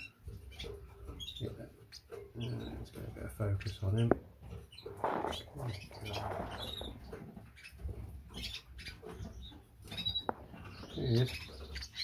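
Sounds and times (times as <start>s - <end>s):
birds scratching on perches and wire: 0.0s - 12.0s
faint bird chirps: 4.6s - 12.0s.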